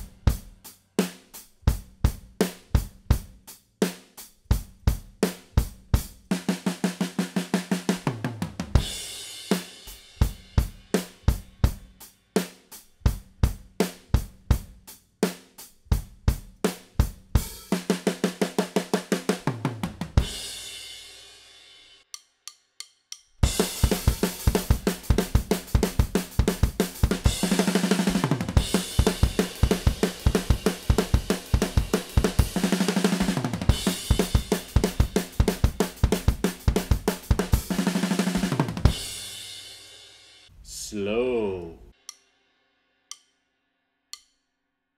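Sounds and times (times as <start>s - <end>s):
drum kit playing punk beat: 0.0s - 21.0s, 23.4s - 40.0s
tom fills: 40.5s - 41.9s
drumstick clicks: 43.1s - 43.4s, 44.1s - 44.4s.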